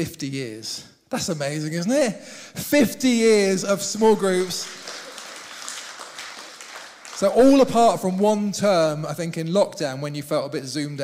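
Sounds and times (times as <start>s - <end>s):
congregation applauding: 4.0s - 8.6s.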